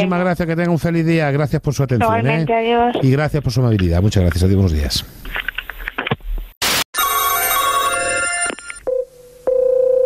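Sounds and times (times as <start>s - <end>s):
steady phone line tone: 7.0s - 10.0s
telephone ringing: 7.0s - 10.0s.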